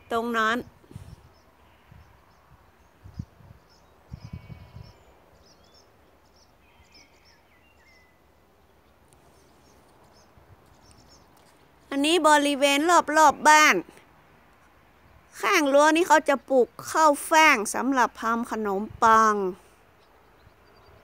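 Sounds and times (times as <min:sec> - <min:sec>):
small birds chirping: 0:00.0 - 0:12.8, 0:17.6 - 0:21.0.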